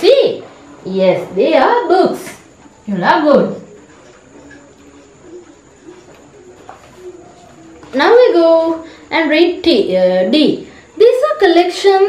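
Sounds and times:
dove cooing: 0:00.0 - 0:12.0.

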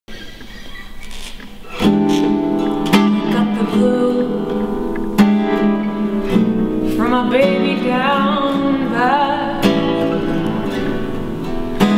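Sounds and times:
acoustic guitar strummed chords: 0:01.6 - 0:11.9.

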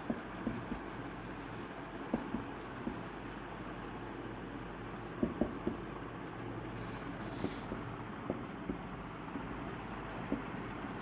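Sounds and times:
marker writing on whiteboard: 0:00.0 - 0:06.5, 0:07.2 - 0:11.0.

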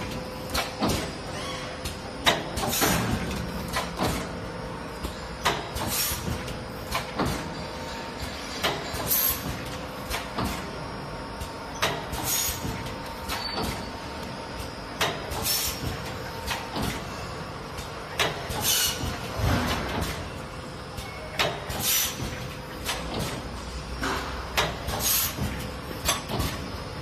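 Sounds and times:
machine mechanical hum: 0:00.0 - 0:27.0
pneumatic air hiss: 0:05.8 - 0:07.0, 0:12.1 - 0:12.8, 0:15.3 - 0:16.0, 0:18.5 - 0:19.2, 0:21.7 - 0:22.4, 0:24.9 - 0:25.6.

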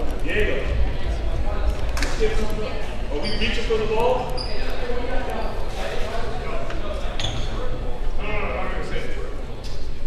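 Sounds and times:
crowd voices and chatter: 0:00.0 - 0:10.0.

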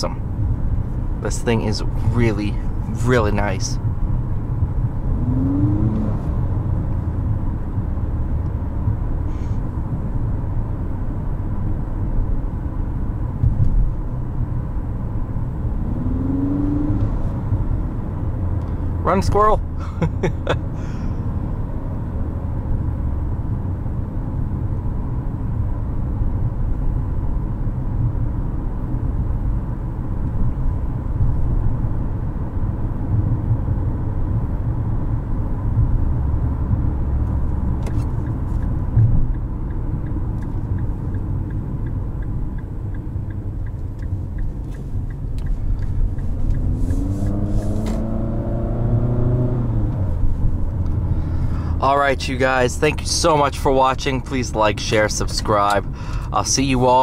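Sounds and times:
car engine: 0:00.0 - 0:57.0
road and tyre noise: 0:00.0 - 0:57.0.

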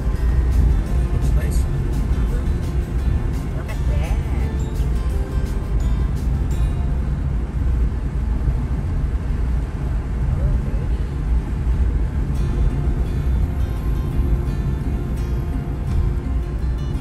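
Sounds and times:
music playing: 0:00.0 - 0:07.6, 0:12.4 - 0:17.0
car road rumble inside cabin: 0:00.0 - 0:17.0.

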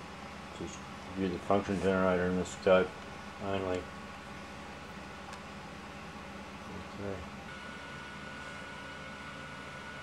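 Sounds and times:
low electrical hum: 0:00.0 - 0:10.0
thin steady whine: 0:00.0 - 0:10.0.

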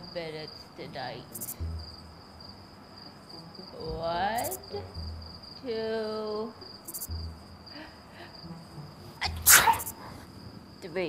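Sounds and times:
cricket trill: 0:00.0 - 0:11.0
person sneezing: 0:09.2 - 0:10.0.

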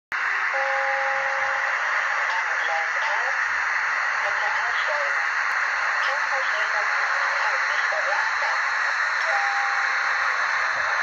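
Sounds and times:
model locomotive hissing running sound: 0:00.3 - 0:11.0.

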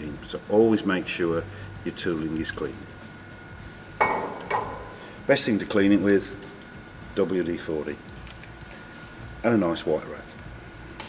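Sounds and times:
metal tool clinking on metal: 0:04.0 - 0:05.0.

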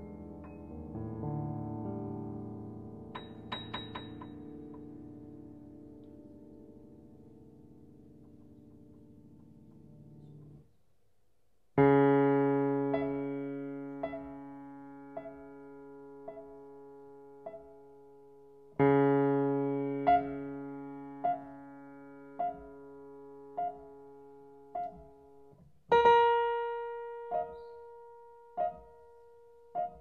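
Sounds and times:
grand piano playing: 0:00.0 - 0:10.5, 0:11.8 - 0:18.0, 0:18.8 - 0:30.0.

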